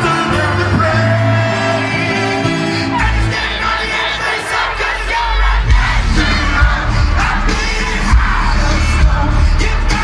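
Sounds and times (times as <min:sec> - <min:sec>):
crowd shouting and singing: 0:00.0 - 0:10.0
heavy bass: 0:00.0 - 0:10.0
live rock music: 0:00.0 - 0:10.0.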